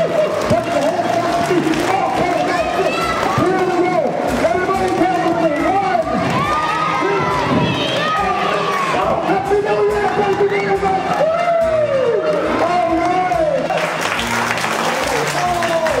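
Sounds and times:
children shouting and cheering: 0.0 - 13.8.

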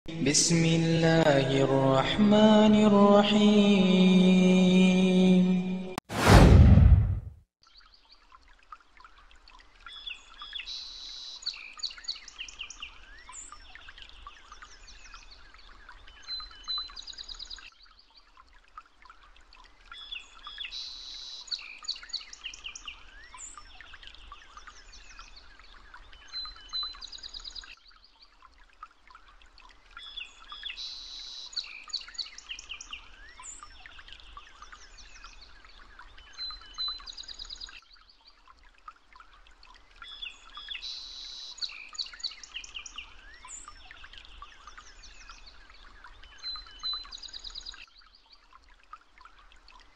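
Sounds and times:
whoosh falling in pitch: 6.1 - 7.3.

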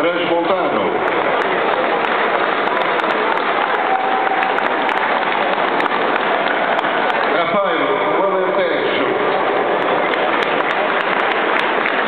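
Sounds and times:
spectators clapping: 0.4 - 12.0.

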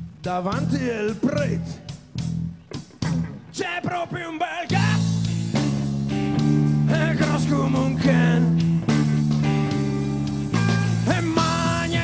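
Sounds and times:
live rock band playing: 0.0 - 12.0
man singing lead vocal: 0.2 - 1.9, 3.5 - 5.4, 6.7 - 8.6, 10.5 - 12.0.

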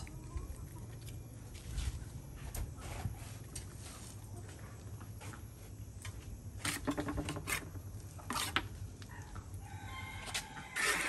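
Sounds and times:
trowel scraping wet mortar: 6.6 - 8.7.

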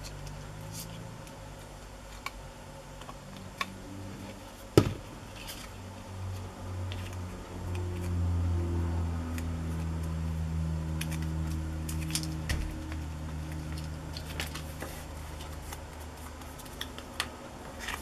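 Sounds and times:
steady low hum: 0.0 - 18.0
paper crinkling: 10.9 - 18.0
sharp paper crackles: 10.9 - 18.0.

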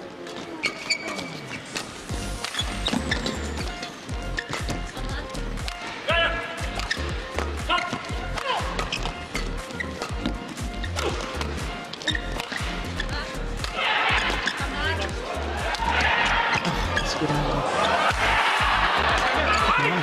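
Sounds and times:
shoes squeaking on court: 0.0 - 18.2
background music with low beat: 2.0 - 20.0
racket strikes on shuttlecock: 13.6 - 14.6.

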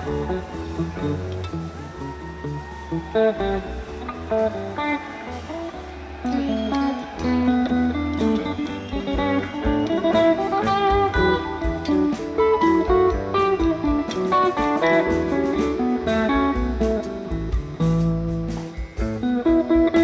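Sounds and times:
bass guitar: 0.0 - 20.0
electric guitar: 0.0 - 20.0
drum beat: 7.2 - 20.0.

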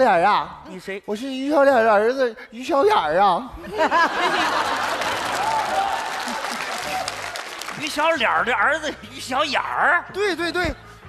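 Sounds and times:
audience applauding: 4.3 - 8.4.

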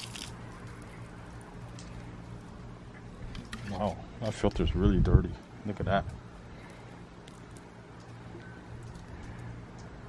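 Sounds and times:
water splashing onto grass: 0.0 - 1.8.

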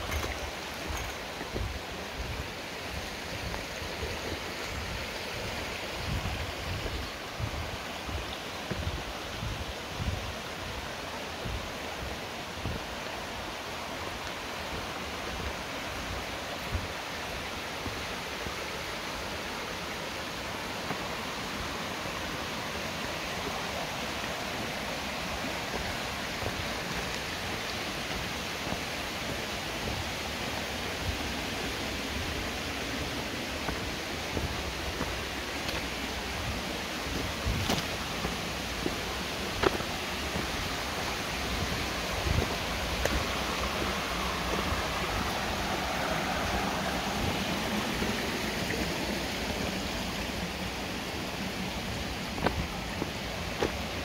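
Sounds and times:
stream running over rocks: 0.0 - 54.0.

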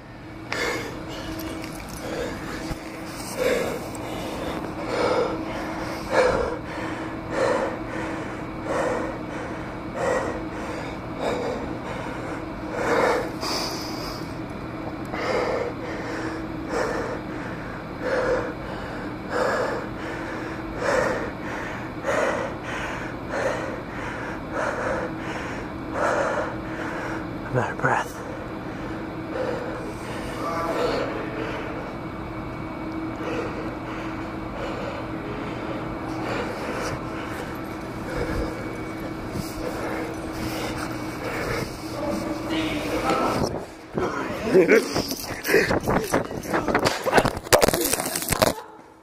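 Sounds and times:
person panting heavily: 0.5 - 14.4, 15.1 - 27.4, 28.2 - 31.9, 33.2 - 46.9.

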